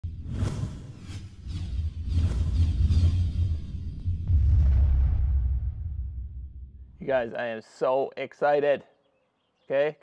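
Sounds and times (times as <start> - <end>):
deep bass rumble: 2.0 - 7.0.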